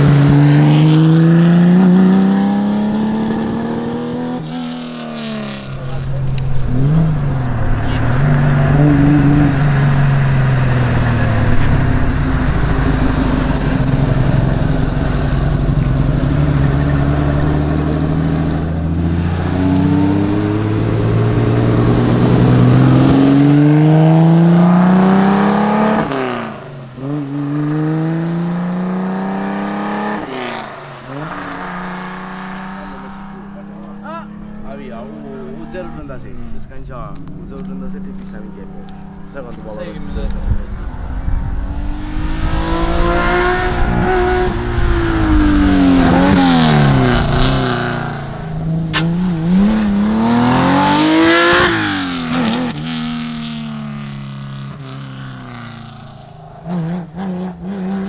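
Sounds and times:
rally car engine revving: 0.0 - 58.0.

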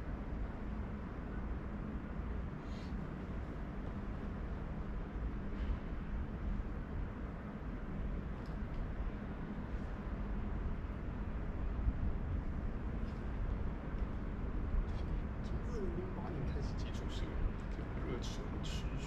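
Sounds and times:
low rumbling background noise: 0.0 - 19.0.

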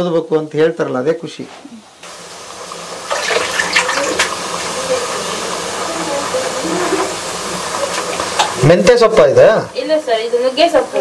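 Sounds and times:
pots hissing on gas stove: 0.0 - 11.0.

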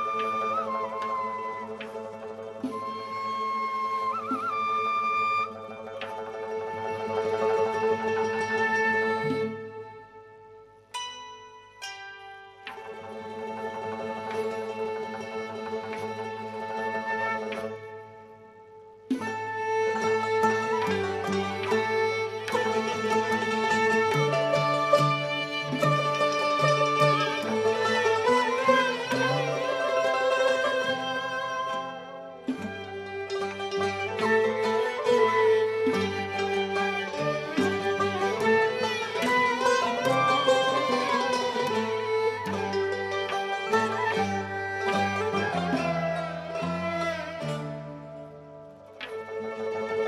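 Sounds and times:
flute melody: 0.0 - 10.9, 12.6 - 50.0
plucked lutes: 0.0 - 50.0
sustained accompaniment: 0.0 - 50.0
struck string notes: 18.9 - 50.0.

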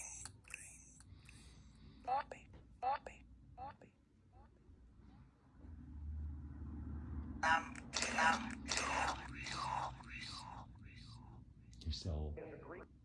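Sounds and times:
whispery speech-like fragments: 0.0 - 1.0, 7.4 - 12.8
low voice-like sound: 7.4 - 12.9.

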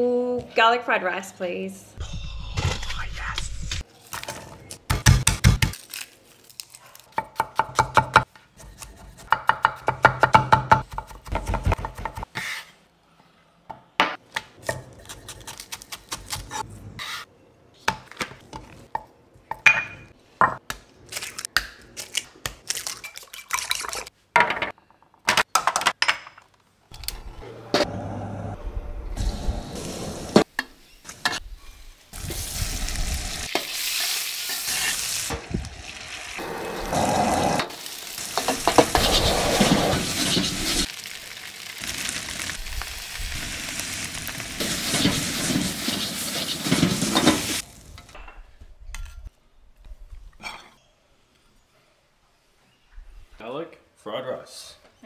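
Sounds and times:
frying sizzle in a wok: 30.4 - 36.4, 37.5 - 48.0.

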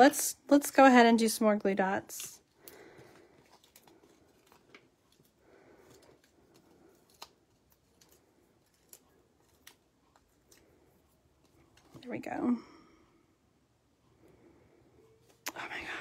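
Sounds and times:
faint paper rustling: 2.1 - 12.2.

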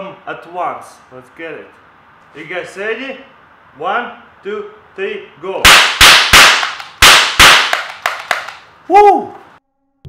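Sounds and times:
confetti revolver pops: 5.7 - 8.6.

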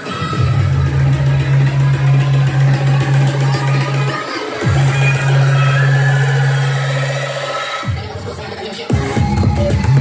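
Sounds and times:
loud electronic dance music: 0.0 - 10.0.

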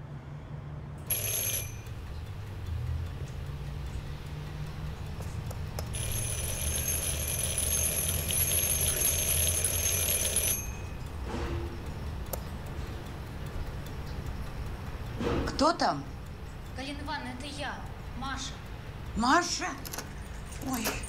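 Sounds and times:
electric doorbell ringing: 1.1 - 2.0, 5.9 - 11.0.

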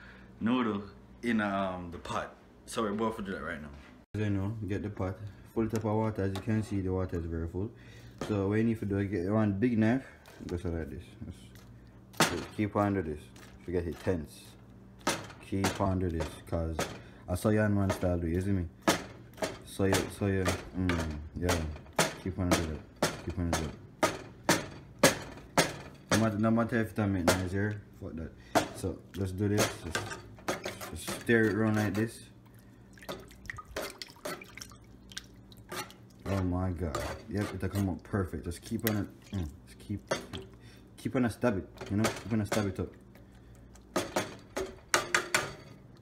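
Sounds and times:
knife knocking metal pot: 18.9 - 27.7, 41.8 - 42.9
knife clinking on metal pot: 28.6 - 32.2, 35.6 - 37.9, 40.0 - 40.6, 41.7 - 43.0.

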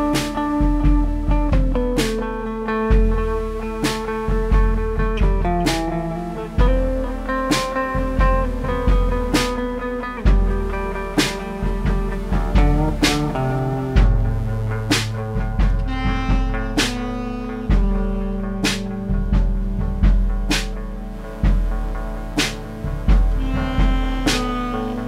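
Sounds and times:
drum and cymbal hits: 0.0 - 25.0
electric bass notes: 0.0 - 25.0
held keyboard chords: 0.0 - 25.0
tenor saxophone: 15.7 - 21.0, 23.1 - 25.0.

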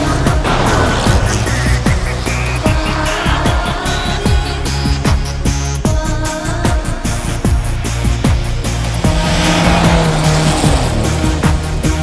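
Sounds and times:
music: 0.0 - 12.0
tyres hissing on snowy road: 7.1 - 12.0
car engine revving past: 8.6 - 12.0.

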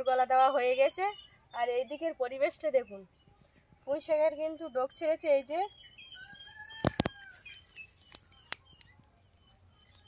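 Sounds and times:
small birds chirping: 0.0 - 10.0
rooster crowing: 6.2 - 7.5.

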